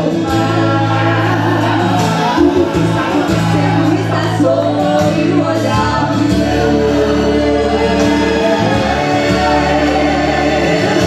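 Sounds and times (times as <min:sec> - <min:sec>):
backing music with bass notes: 0:00.0 - 0:11.0
women singing gospel song: 0:00.0 - 0:11.0.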